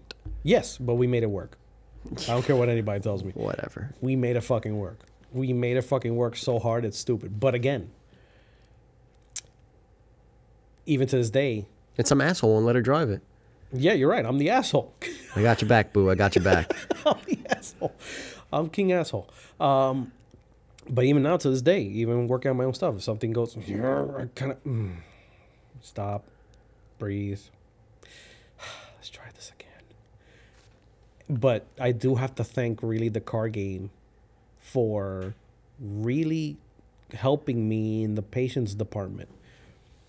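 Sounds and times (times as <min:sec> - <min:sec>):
faint whispering: 0:28.9 - 0:30.0.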